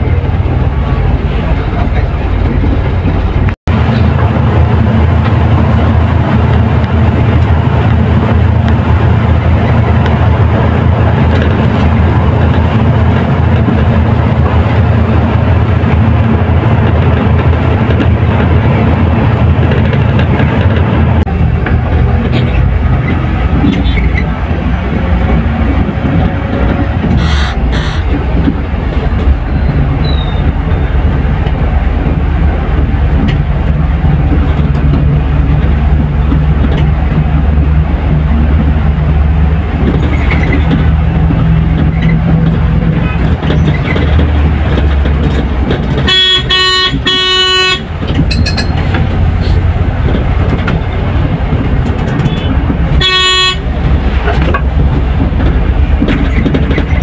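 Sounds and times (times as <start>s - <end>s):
engine and road rumble: 0.0s - 57.0s
vehicle horn blasts: 46.1s - 47.8s, 52.3s - 53.6s.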